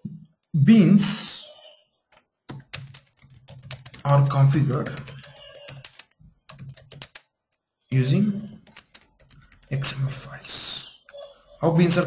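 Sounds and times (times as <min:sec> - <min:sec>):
keyboard keys clicking: 0:02.1 - 0:07.7, 0:08.5 - 0:09.9.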